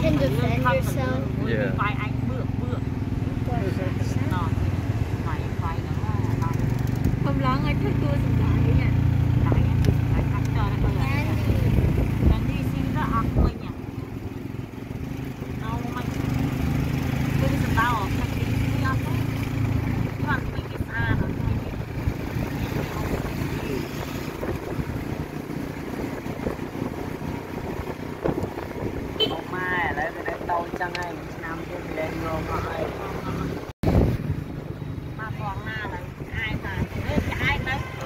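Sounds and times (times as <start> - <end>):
tuk-tuk engine rumbling: 0.0 - 38.0
wind on microphone: 9.3 - 13.8, 20.4 - 29.2, 33.8 - 38.0.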